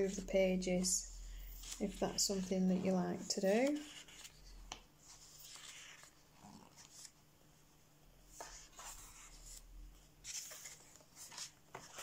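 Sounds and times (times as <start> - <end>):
paper pages turning: 1.5 - 2.7, 3.4 - 7.2, 10.2 - 12.0.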